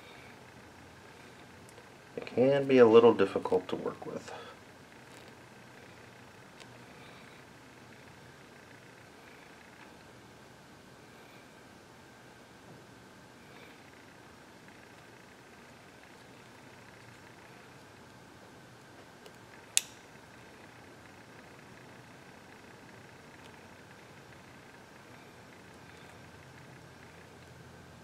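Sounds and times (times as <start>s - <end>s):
faint room hiss: 0.0s - 28.0s.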